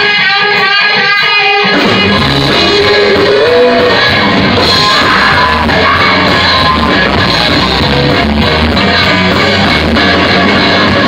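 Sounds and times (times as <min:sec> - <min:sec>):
bass guitar: 0:00.0 - 0:11.0
drums: 0:00.0 - 0:11.0
electric guitar riff: 0:00.0 - 0:11.0
rock band playing: 0:00.0 - 0:11.0.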